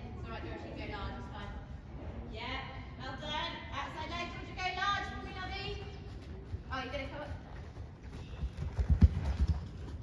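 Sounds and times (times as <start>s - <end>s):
horse hooves thudding on soft ground: 5.2s - 10.0s.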